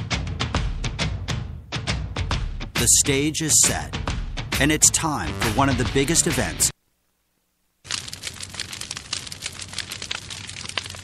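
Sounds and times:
dense crackling noise: 6.7s - 11.0s.

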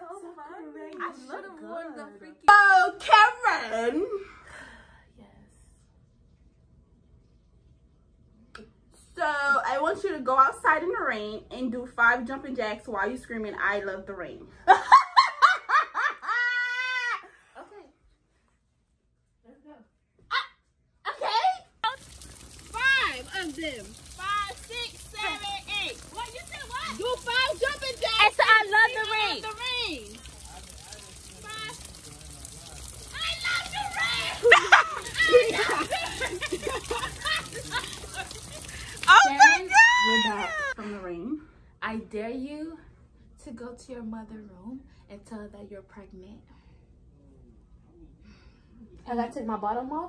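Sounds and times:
women laughing: 14.7s - 17.2s, 34.2s - 40.8s
women shouting and laughing: 15.8s - 17.3s, 21.1s - 30.2s, 33.0s - 40.8s
rain hiss: 21.8s - 40.8s.

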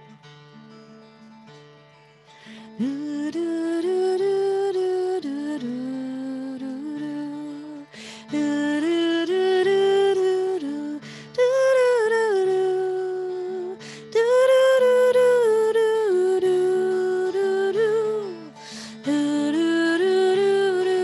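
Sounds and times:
acoustic guitar chords: 0.0s - 21.0s
singer breathing: 2.3s - 2.8s, 7.9s - 8.3s, 11.0s - 11.3s, 13.8s - 14.1s, 18.5s - 19.0s
woman singing wordless melody: 2.5s - 21.0s.

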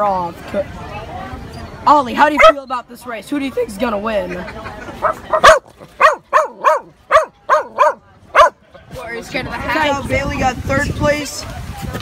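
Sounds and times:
dog barking: 2.4s - 2.6s, 5.0s - 8.6s.

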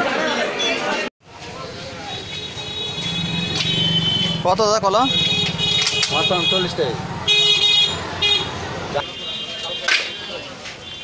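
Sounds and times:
people talking: 0.0s - 7.1s
vehicle horn tooting: 2.0s - 11.0s.

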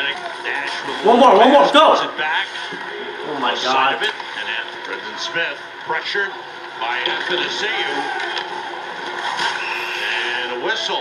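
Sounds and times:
television sports broadcast din: 0.0s - 11.0s.

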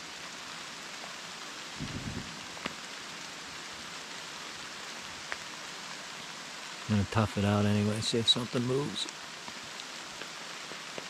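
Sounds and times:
steady rain in woods: 0.0s - 11.0s.

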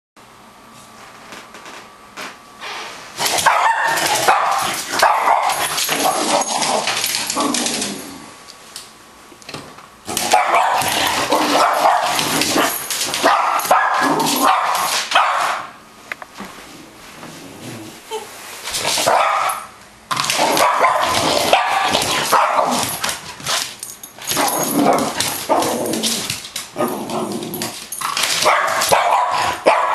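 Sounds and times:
dog barking and yipping: 3.2s - 6.9s, 10.2s - 15.7s, 19.0s - 19.7s, 20.4s - 23.0s, 28.3s - 29.9s.

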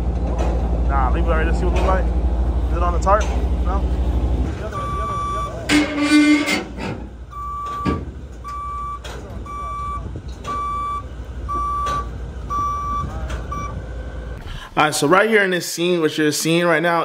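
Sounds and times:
low engine rumble: 0.0s - 15.4s
alarm beeping: 4.7s - 6.6s, 7.3s - 13.8s.

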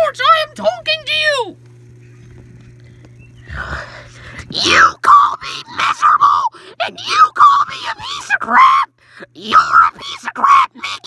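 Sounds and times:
steady low hum: 0.0s - 11.0s
person screaming and groaning: 3.5s - 11.0s.

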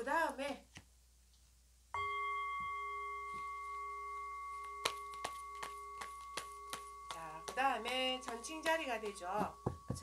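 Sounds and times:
struck chime ringing: 2.0s - 10.0s.

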